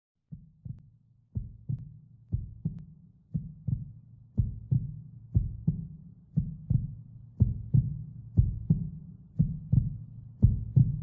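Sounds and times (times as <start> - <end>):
heartbeat thumps: 1.4 - 2.8, 3.4 - 11.0.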